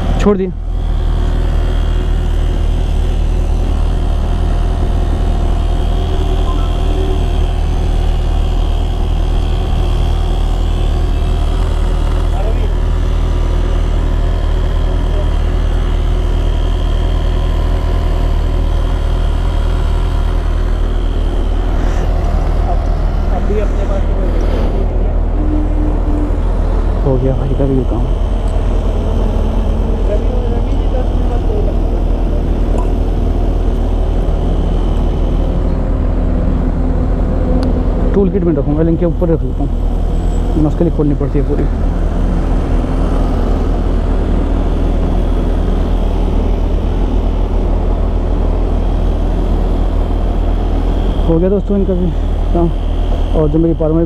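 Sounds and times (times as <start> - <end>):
small air compressor running: 0.0 - 54.0.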